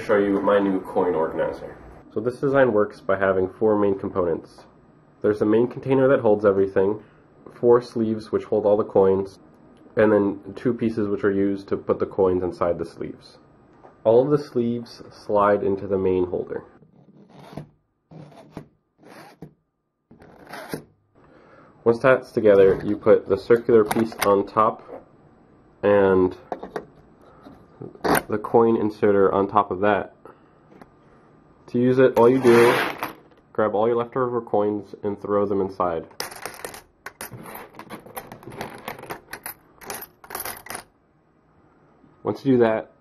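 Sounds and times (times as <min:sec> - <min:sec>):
plastic sleeves scraping: 0:16.8 - 0:20.9, 0:32.2 - 0:33.2
coins clattering in plastic tube: 0:36.2 - 0:40.8.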